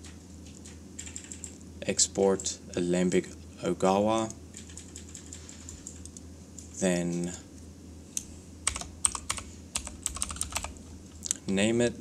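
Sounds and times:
computer keyboard typing: 0.6s - 1.6s, 4.5s - 6.2s, 8.6s - 10.8s.

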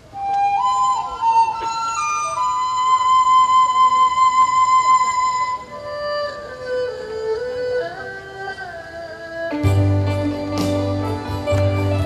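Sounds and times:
wind instrument melody: 0.0s - 12.0s
traditional orchestra playing: 9.5s - 12.0s.

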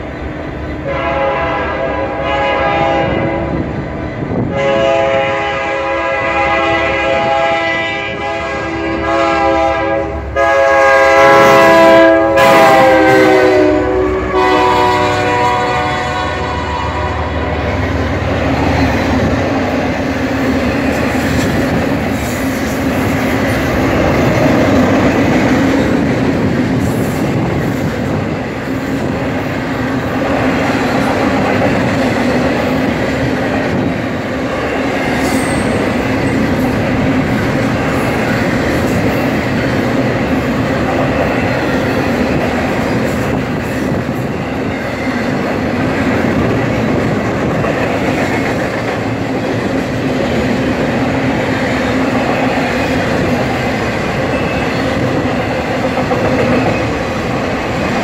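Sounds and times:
train rumble and wheel clatter: 0.0s - 58.0s
locomotive air horn blasts: 0.8s - 3.6s, 4.5s - 17.6s.

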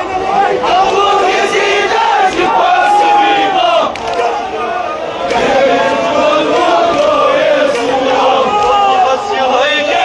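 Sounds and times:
crowd of men chanting: 0.0s - 10.0s.

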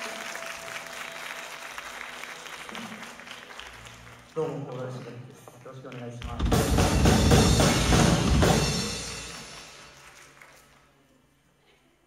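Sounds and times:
audience applauding: 0.0s - 6.8s, 8.4s - 11.3s.

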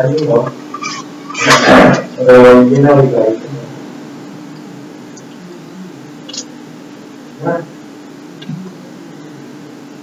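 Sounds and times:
faint low hum: 0.0s - 10.0s.

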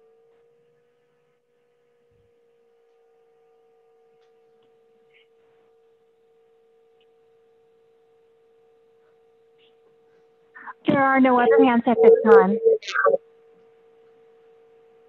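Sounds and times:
faint electronic hum: 0.0s - 15.0s.

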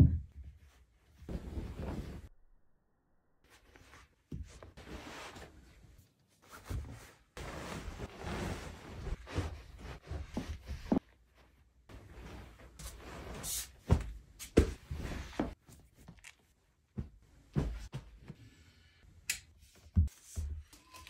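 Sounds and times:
bedding rustling: 0.6s - 2.3s, 3.5s - 15.6s.

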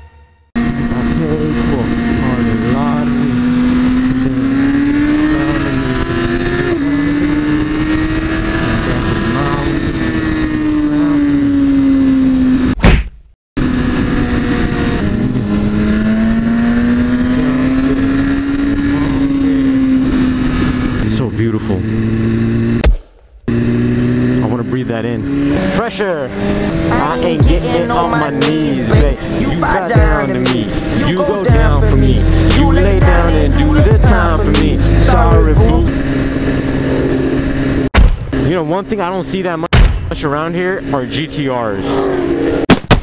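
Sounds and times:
motorcycle engine cruising: 0.5s - 12.8s, 13.6s - 22.8s, 23.4s - 39.6s, 40.2s - 42.7s.

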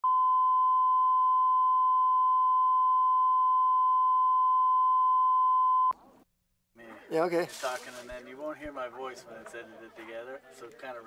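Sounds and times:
high-pitched sine tone: 0.0s - 6.0s.

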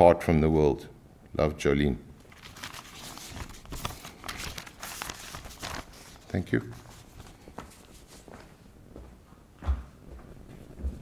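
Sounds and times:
faint footsteps: 6.7s - 11.0s.

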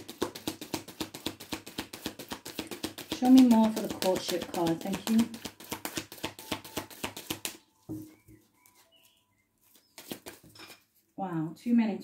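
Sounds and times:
faint bird chirps: 7.5s - 10.7s.

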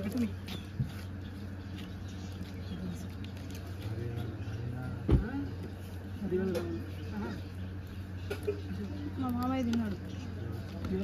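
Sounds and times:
steady low hum: 0.0s - 11.0s
men talking: 3.8s - 5.5s.

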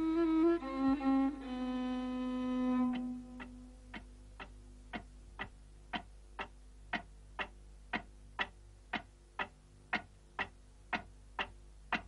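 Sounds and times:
faint steady hum: 0.0s - 12.0s
steady ticking: 2.9s - 12.0s.

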